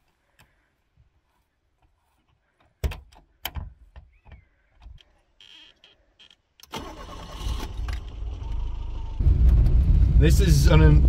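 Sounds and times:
car engine starting and running: 0:06.6 - 0:11.0.

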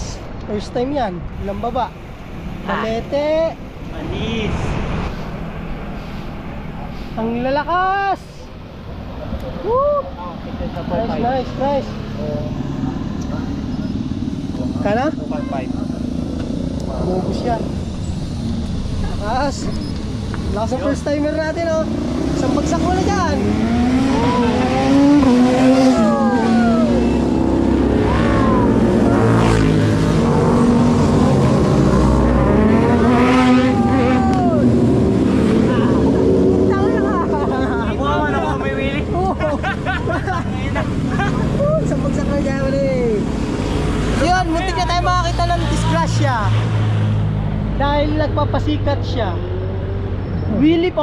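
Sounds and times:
motorcycles passing at speed: 0:10.2 - 0:51.0.

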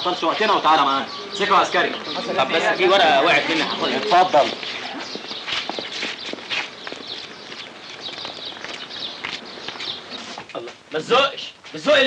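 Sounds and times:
footsteps on pavement: 0:00.1 - 0:11.9.

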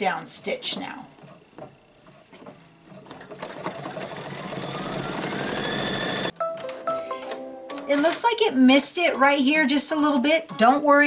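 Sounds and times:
embroidery machine with rising whine: 0:02.5 - 0:06.3.

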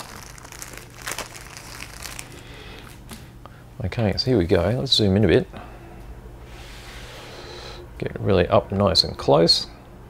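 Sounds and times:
plastic bag crinkling: 0:00.0 - 0:03.1.

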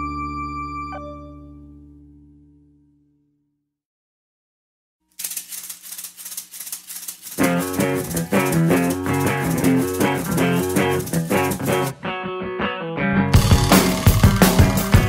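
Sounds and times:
fast rattling drum rhythm: 0:05.2 - 0:11.9, 0:13.4 - 0:15.0
electric guitar and bass riff: 0:08.0 - 0:15.0.

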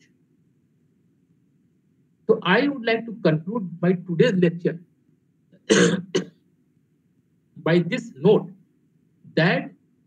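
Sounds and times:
man coughing: 0:05.6 - 0:06.4.

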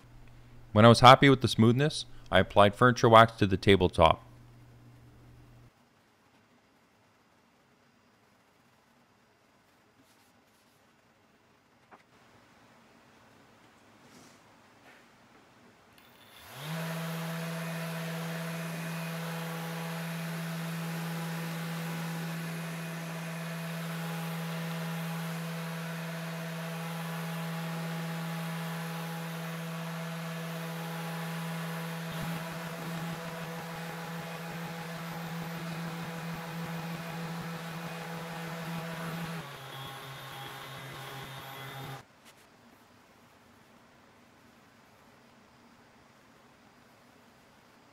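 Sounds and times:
electric sander running: 0:16.0 - 0:42.0.

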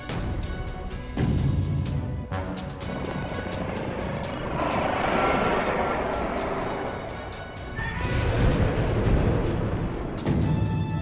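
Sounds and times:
dramatic soundtrack music: 0:00.0 - 0:11.0
monster roar: 0:02.9 - 0:09.3.

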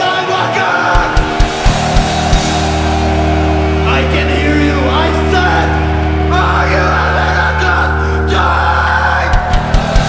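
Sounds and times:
drum and bass hits: 0:01.0 - 0:03.9, 0:09.3 - 0:10.0
distorted guitar and bass chord: 0:01.0 - 0:10.0.

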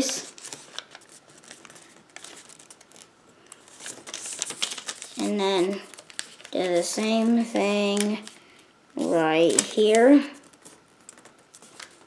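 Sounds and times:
paper rustling and crinkling: 0:00.0 - 0:08.4, 0:09.0 - 0:12.0.

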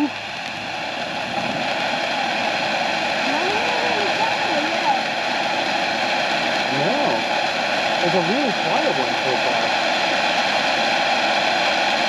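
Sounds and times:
firework fountain spark hiss: 0:00.0 - 0:12.0.

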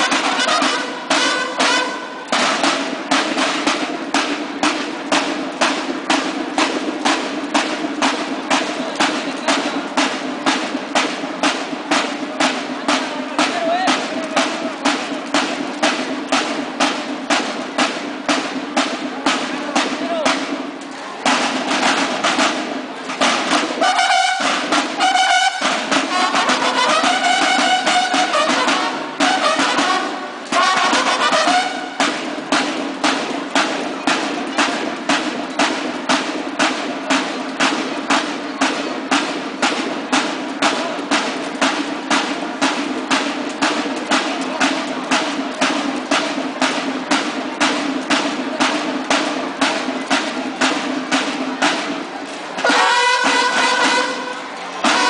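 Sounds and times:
bugle notes: 0:00.0 - 0:18.5, 0:21.2 - 0:32.4, 0:52.6 - 0:55.0
snare drums beating: 0:00.0 - 0:55.0.

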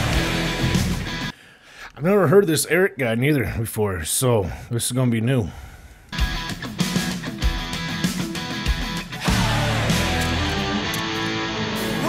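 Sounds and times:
hard rock band music: 0:00.0 - 0:01.3, 0:06.2 - 0:12.0.

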